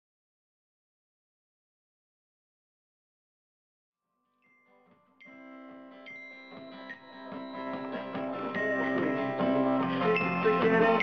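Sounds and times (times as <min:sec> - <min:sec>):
glockenspiel notes: 0:04.2 - 0:11.0
strummed acoustic guitar: 0:05.3 - 0:11.0.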